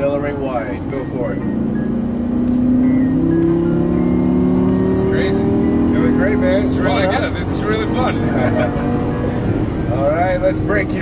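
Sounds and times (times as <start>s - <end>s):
car engine accelerating hard: 0.0s - 11.0s.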